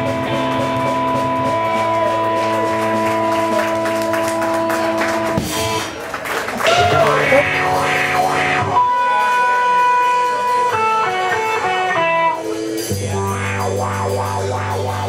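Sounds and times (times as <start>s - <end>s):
drums: 0.0s - 15.0s
electric guitar blues: 0.0s - 15.0s.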